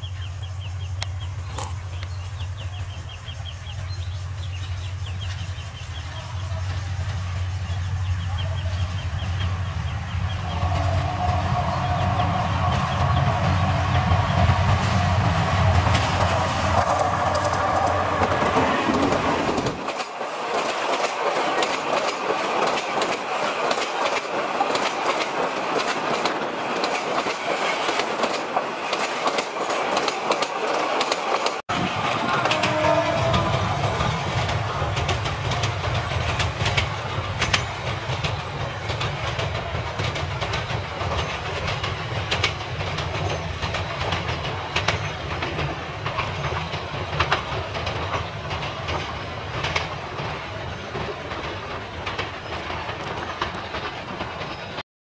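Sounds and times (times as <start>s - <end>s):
locomotive low rumble: 0.0s - 19.9s
train coaches clattering: 0.0s - 54.8s
wheels clicking over rail joints: 10.4s - 54.8s.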